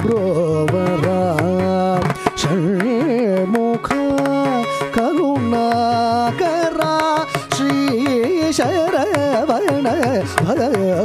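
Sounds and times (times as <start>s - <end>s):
man singing with ornaments: 0.0s - 11.0s
violin: 0.0s - 11.0s.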